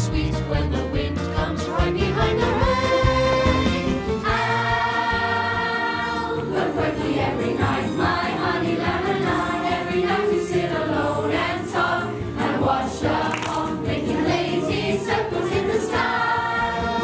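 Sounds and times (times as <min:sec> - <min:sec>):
musical backing: 0:00.0 - 0:17.0
group singing: 0:00.1 - 0:17.0.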